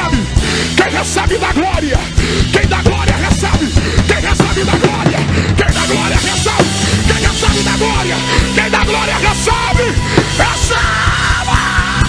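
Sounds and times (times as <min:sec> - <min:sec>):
drum kit beat: 0:00.0 - 0:12.0
worship band playing: 0:00.0 - 0:12.0.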